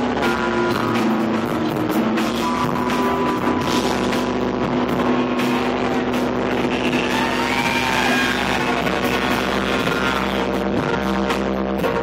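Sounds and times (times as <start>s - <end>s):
live instrumental band: 0.0s - 12.0s.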